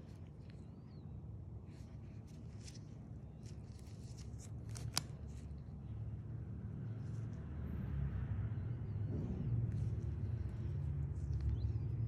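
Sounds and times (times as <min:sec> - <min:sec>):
gloved fingers ticking and rustling: 0:00.0 - 0:06.0, 0:09.6 - 0:12.0
low steady hum: 0:00.0 - 0:12.0.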